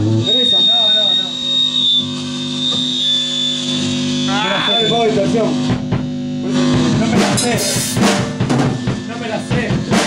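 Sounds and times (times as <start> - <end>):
thin high-pitched whine: 0.2 - 5.6.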